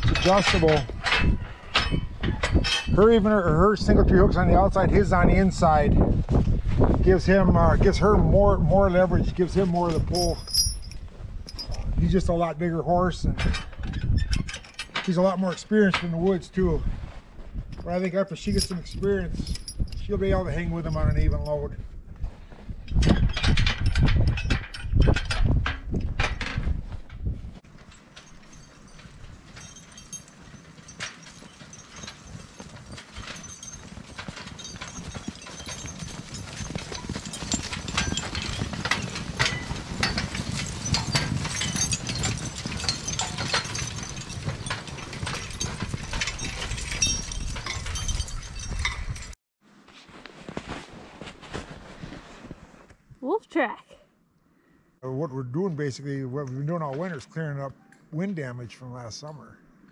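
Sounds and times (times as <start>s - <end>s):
harness chains clinking and rattling: 0.0s - 5.9s, 7.1s - 16.7s, 17.6s - 21.7s, 22.8s - 49.4s
horse hooves on snow: 2.7s - 12.5s, 26.7s - 49.3s, 49.9s - 52.9s.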